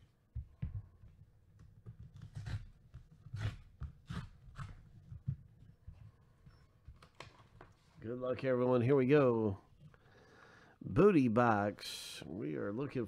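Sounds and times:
cardboard tearing: 0:02.1 - 0:04.8.

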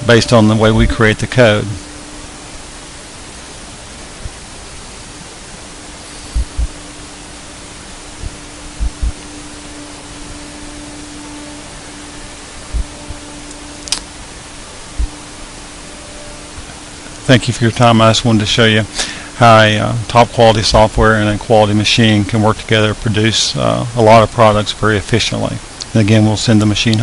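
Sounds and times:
faint steady hum: 0:00.0 - 0:27.0
dull low thumps: 0:06.4 - 0:06.9, 0:08.2 - 0:09.3, 0:12.6 - 0:13.2, 0:14.9 - 0:15.2
sharp click: 0:13.5 - 0:14.1.

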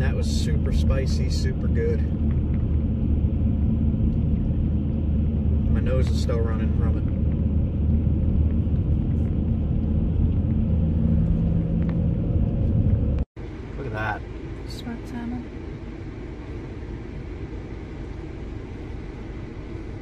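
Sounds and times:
road and engine noise in car: 0:00.0 - 0:20.0.

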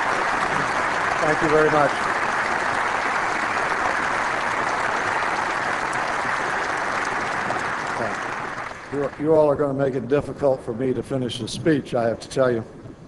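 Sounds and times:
audience applauding: 0:00.0 - 0:09.9.

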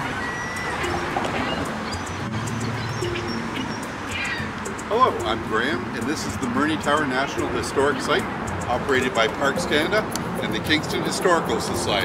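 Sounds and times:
birds calling: 0:00.0 - 0:10.4.

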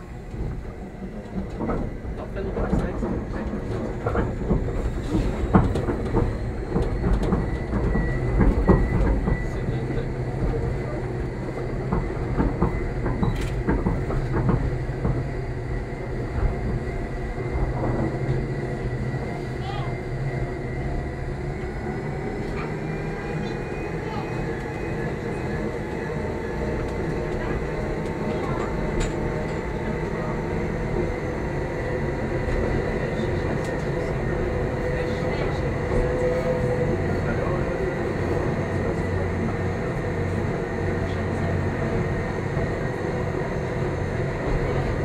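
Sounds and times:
train wheels rumbling: 0:00.0 - 0:45.0.

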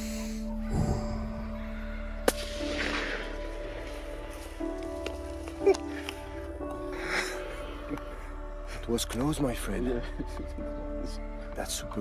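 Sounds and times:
background music: 0:00.0 - 0:12.0
rifle shot: 0:02.2 - 0:03.4.

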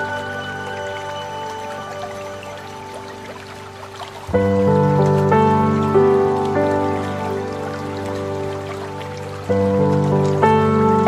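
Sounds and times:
calm music of long held notes: 0:00.0 - 0:11.0
water pattering: 0:00.0 - 0:11.0.

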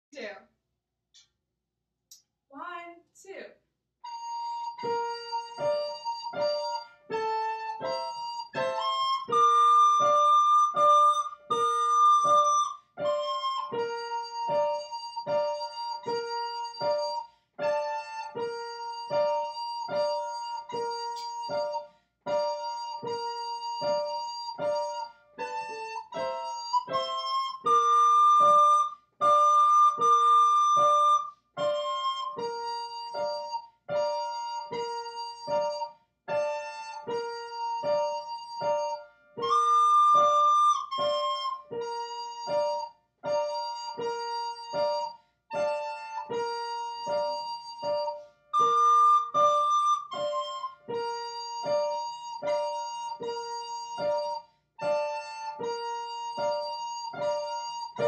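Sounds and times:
keyboard simple melody: 0:04.0 - 0:58.0.

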